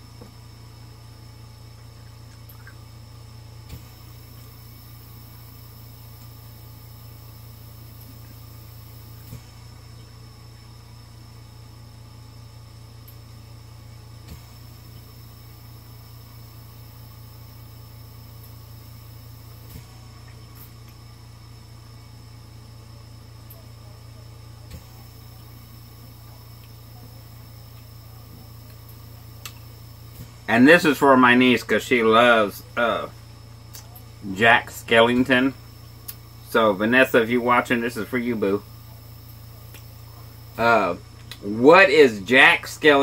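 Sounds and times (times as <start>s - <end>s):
low electrical hum: 0.0s - 43.0s
thin high whine: 0.0s - 43.0s.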